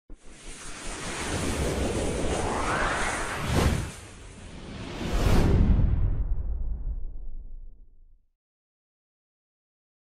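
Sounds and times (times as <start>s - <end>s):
whoosh of rushing noise: 0.1s - 7.1s.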